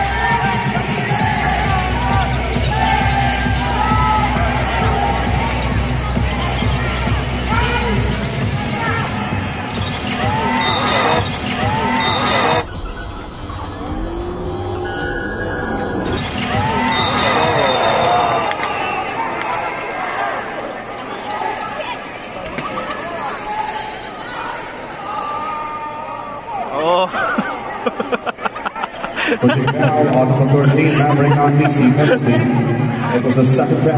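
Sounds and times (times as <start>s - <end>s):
arena music: 0.0s - 13.4s, 15.6s - 19.4s
crowd noise: 0.0s - 33.9s
sneakers squeaking on court: 6.5s - 9.1s.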